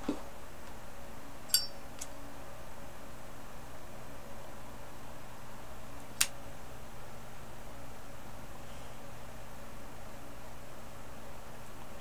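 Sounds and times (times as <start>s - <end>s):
metal lighter lid clink: 1.5s - 1.8s.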